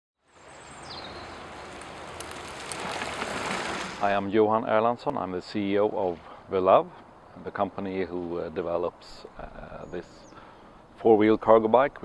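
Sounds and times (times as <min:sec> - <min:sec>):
steady outdoor hiss: 0:00.2 - 0:12.0
high bird chirp: 0:00.5 - 0:01.4.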